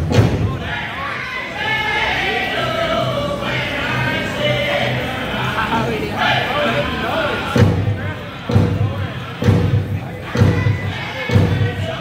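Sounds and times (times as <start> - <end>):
hard drumbeats: 0.0 - 0.9, 7.2 - 12.0
high-pitched voices singing: 0.5 - 12.0
soft dull drum beats: 7.5 - 12.0.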